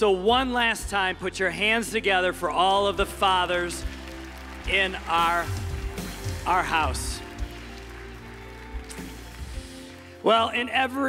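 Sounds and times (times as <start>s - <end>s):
soft band music: 0.0s - 11.0s
light applause: 2.6s - 10.3s.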